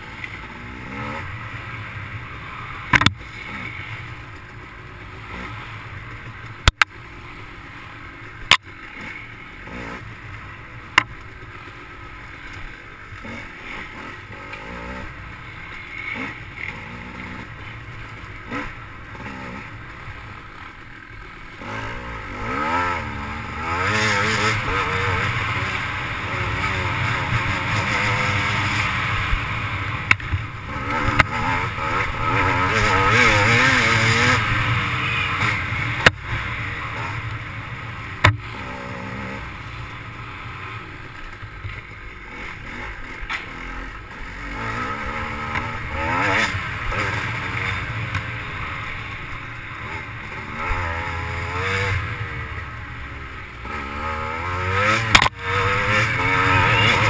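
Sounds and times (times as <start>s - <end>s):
dirt bike engine revving: 0.0s - 4.2s, 8.4s - 11.0s, 13.0s - 57.0s.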